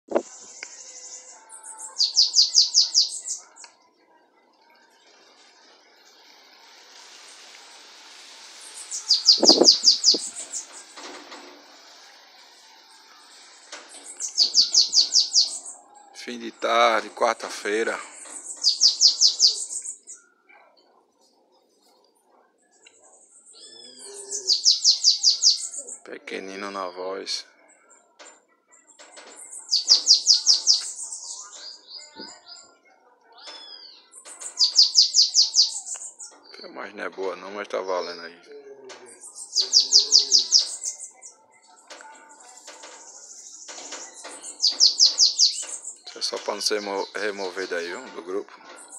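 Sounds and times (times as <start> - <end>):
bird singing: 0.1 - 4.0, 8.7 - 11.1, 13.8 - 17.4, 18.0 - 20.6, 22.6 - 48.9
bird buzzy trill: 8.8 - 10.7.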